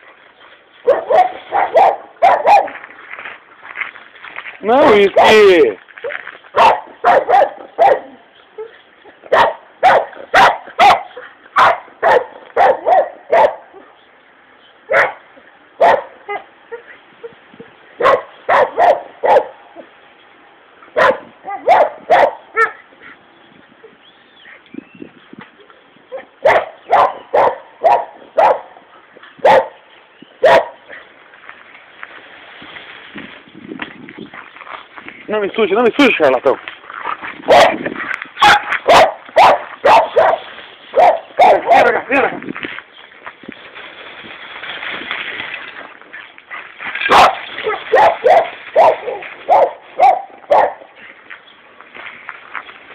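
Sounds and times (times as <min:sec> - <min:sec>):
dog barking: 0:00.8 - 0:02.8, 0:06.6 - 0:08.7, 0:09.3 - 0:14.0, 0:14.9 - 0:15.2, 0:15.8 - 0:16.9, 0:18.0 - 0:19.9, 0:21.0 - 0:22.8, 0:26.1 - 0:28.8, 0:29.4 - 0:29.8, 0:30.4 - 0:31.0, 0:37.5 - 0:37.8, 0:38.4 - 0:42.0, 0:46.5 - 0:50.9.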